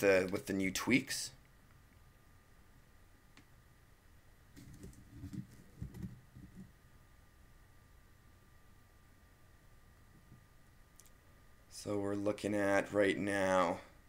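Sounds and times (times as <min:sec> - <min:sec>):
faint high whine: 0:00.0 - 0:14.0
faint rustles and clicks: 0:04.5 - 0:06.8.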